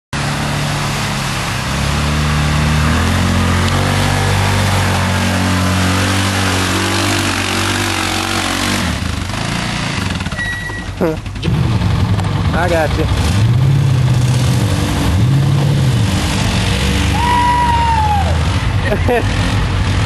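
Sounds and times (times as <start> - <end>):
engine working hard under load: 0.2 - 20.0.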